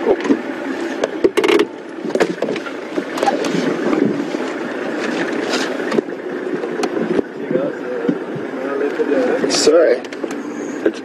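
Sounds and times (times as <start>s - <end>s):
vehicle engine rough rumble: 0.0s - 11.0s.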